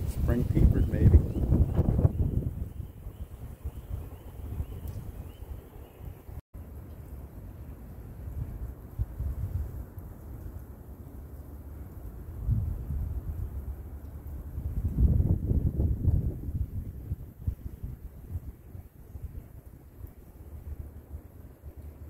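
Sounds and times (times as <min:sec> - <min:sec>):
wind buffeting microphone: 0:00.0 - 0:06.4, 0:08.1 - 0:10.4, 0:12.0 - 0:22.0.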